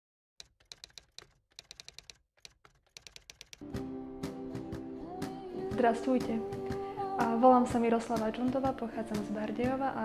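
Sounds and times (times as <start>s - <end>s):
keyboard typing clicks: 0.4s - 3.6s
music with sustained notes: 3.6s - 10.0s.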